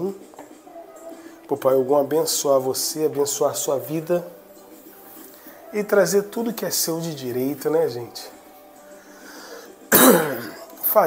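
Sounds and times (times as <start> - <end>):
woman coughing: 9.9 - 10.7.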